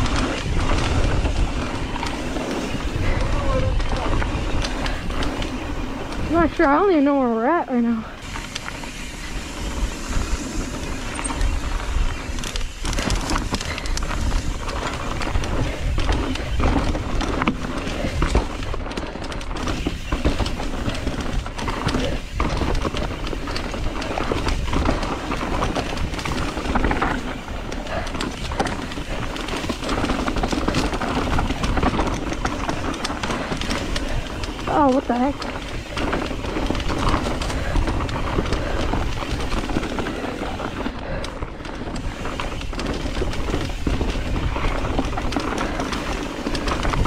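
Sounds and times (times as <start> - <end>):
wind on microphone: 0.0 - 6.7, 9.0 - 47.0
bike rattling and knocking: 0.0 - 47.0
tyres rolling on dirt: 0.0 - 47.0.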